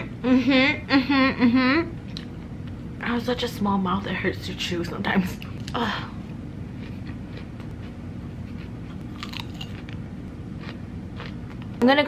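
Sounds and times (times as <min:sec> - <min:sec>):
low steady hum: 0:00.0 - 0:12.0
person chewing salad: 0:06.7 - 0:11.8
crisp crunches: 0:09.1 - 0:10.0.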